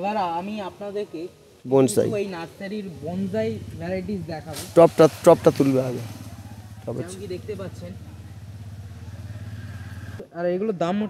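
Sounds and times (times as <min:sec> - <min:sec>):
small engine running: 0:02.9 - 0:10.2.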